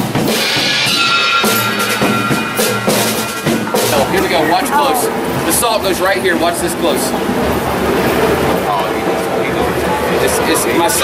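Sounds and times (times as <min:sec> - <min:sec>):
motor traffic passing: 0:01.8 - 0:10.2
scattered voices: 0:02.0 - 0:11.0.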